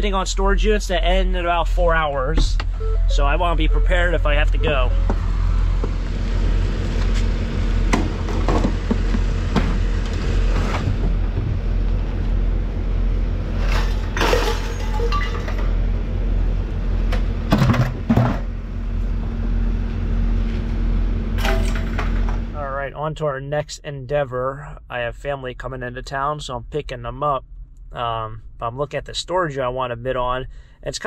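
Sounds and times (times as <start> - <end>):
low rumble and hum: 0.0 - 31.0
scrap metal clanking: 13.6 - 15.7.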